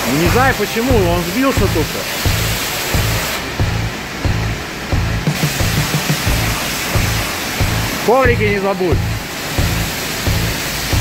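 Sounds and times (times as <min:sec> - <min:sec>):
music with low beat: 0:00.0 - 0:11.0
pressure washer spraying water: 0:00.0 - 0:11.0.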